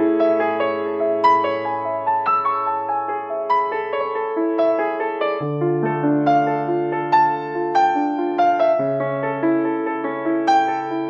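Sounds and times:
slow soft piano piece: 0:00.0 - 0:11.0.

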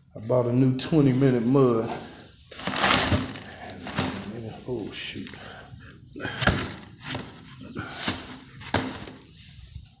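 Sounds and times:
plastic sheeting rustling: 0:01.8 - 0:05.1.

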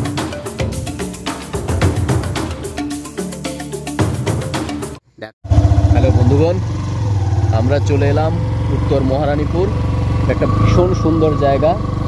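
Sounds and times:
vehicle engine running: 0:05.5 - 0:12.0
person's voice: 0:10.3 - 0:11.8.

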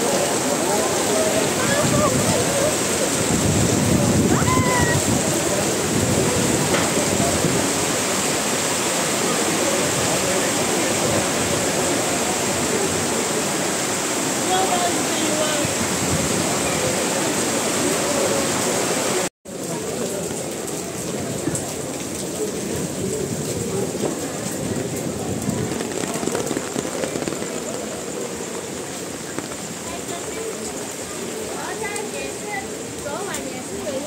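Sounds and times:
voices talking: 0:00.0 - 0:03.4, 0:23.6 - 0:34.0
heavy rain on pavement: 0:00.0 - 0:34.0.

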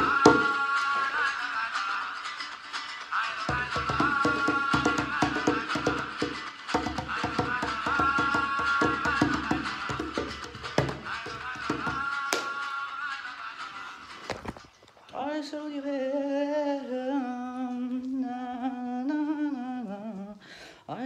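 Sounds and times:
music with percussive clicks: 0:00.0 - 0:00.7, 0:03.4 - 0:12.7.

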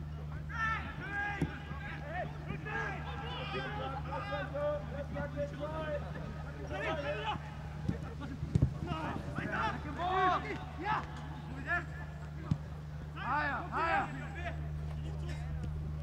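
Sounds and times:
steady low hum: 0:00.0 - 0:16.0
players shouting: 0:00.3 - 0:16.0.

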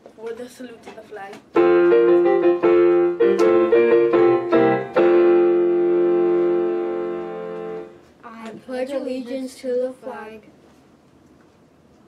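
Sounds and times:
keyboard chords: 0:01.6 - 0:08.0.

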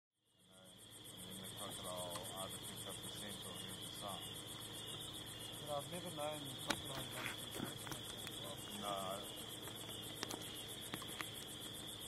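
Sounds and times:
crickets trilling: 0:00.2 - 0:12.0
fast pulsed insect chirping: 0:00.2 - 0:12.0
soft voices: 0:00.6 - 0:04.2.

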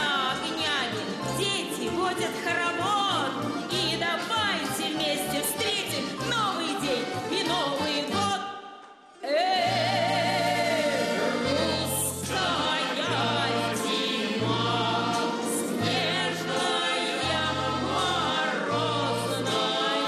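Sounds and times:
folk song with female choir: 0:00.0 - 0:20.0.

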